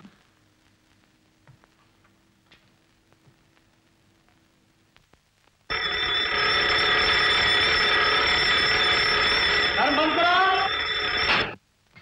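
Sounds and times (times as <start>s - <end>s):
burglar alarm ringing: 5.7s - 11.6s.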